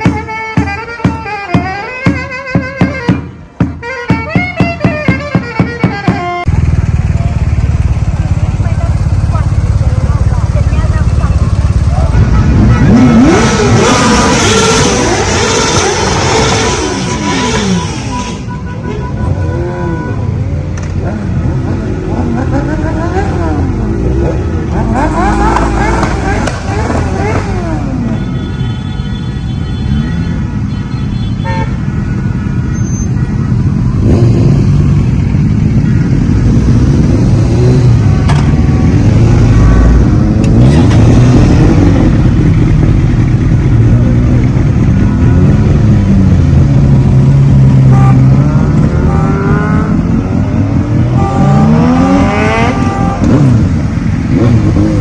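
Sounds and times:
motorcycles idling and revving: 0:00.0 - 0:55.0
horn sounding: 0:10.7 - 0:20.5, 0:22.6 - 0:42.2, 0:43.6 - 0:54.9.

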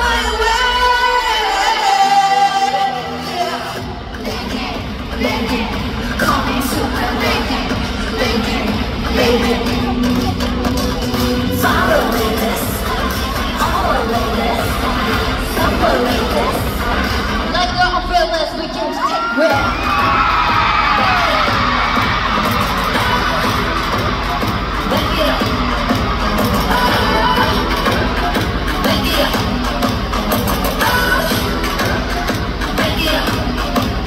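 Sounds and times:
crowd screaming and cheering: 0:00.0 - 0:34.0
live pop music with bass beat: 0:00.0 - 0:34.0.

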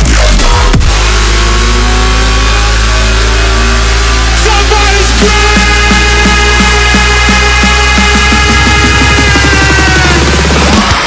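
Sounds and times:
distorted synth bass drone: 0:00.0 - 0:11.0.

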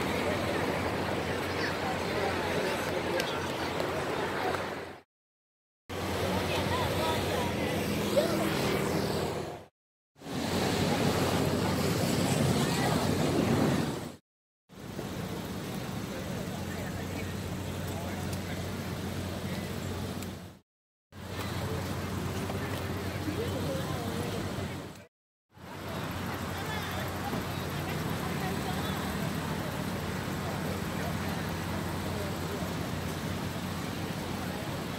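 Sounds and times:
street noise: 0:00.0 - 0:05.1, 0:05.9 - 0:34.9.

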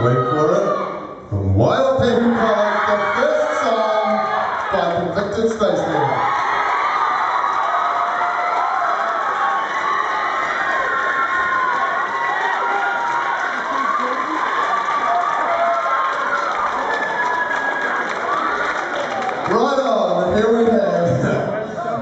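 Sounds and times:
crowd cheering and screaming: 0:00.0 - 0:01.2, 0:02.0 - 0:19.7.

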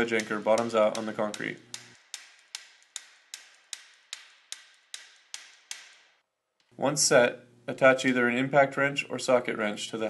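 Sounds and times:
hammer tapping metal tool: 0:00.0 - 0:06.7.

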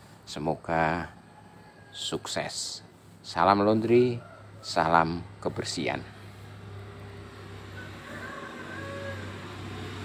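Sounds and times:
steady low hum: 0:04.4 - 0:10.0.

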